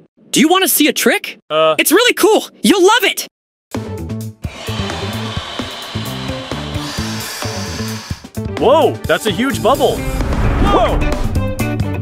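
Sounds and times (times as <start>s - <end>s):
background music with bass line: 3.8s - 12.0s
cartoon blowing hiss: 4.7s - 8.3s.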